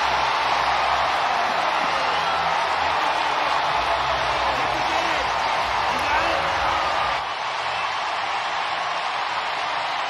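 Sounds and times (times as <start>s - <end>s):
stadium crowd cheering and applauding: 0.0s - 10.0s.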